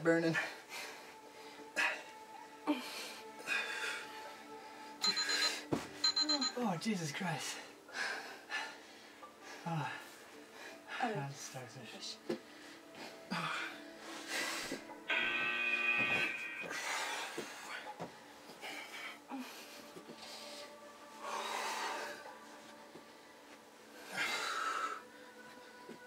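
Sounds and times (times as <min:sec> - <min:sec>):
quiet background music: 0:00.0 - 0:26.0
heavy forceful breathing: 0:00.4 - 0:05.6, 0:12.3 - 0:14.9, 0:16.7 - 0:25.8.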